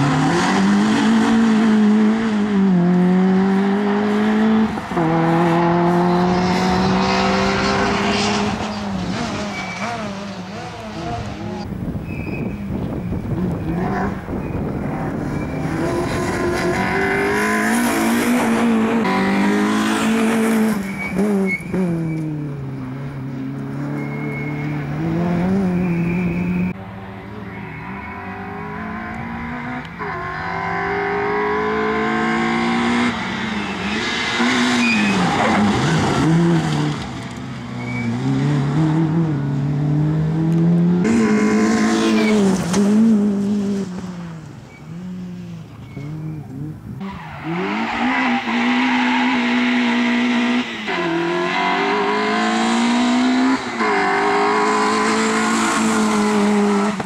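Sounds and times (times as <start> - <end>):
car engine revving: 0.0 - 11.7, 13.2 - 57.0.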